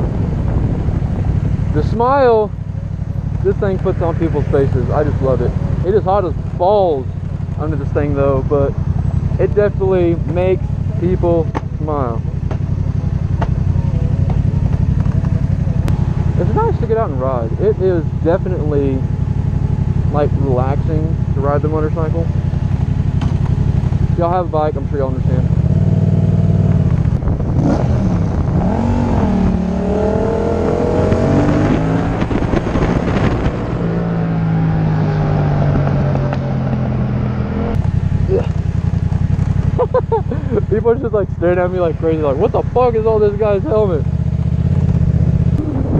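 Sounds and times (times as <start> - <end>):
wind rushing over microphone: 0.0 - 2.7, 25.3 - 37.9, 43.7 - 45.9
motorcycle engine idling: 0.0 - 27.6, 34.1 - 45.9.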